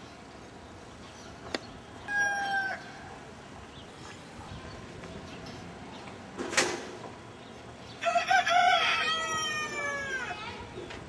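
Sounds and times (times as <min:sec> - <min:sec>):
rooster crowing: 0:02.1 - 0:02.9, 0:08.0 - 0:10.5.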